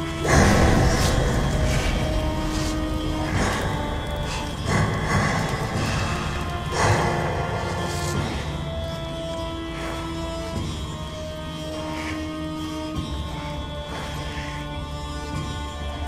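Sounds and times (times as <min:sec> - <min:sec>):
tense ominous music: 0:00.0 - 0:16.0
sudden loud noisy hit: 0:00.2 - 0:07.8.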